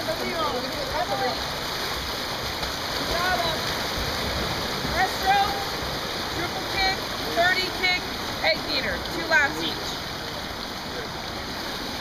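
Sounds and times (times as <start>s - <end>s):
water splashing in a pool: 0.0s - 12.0s.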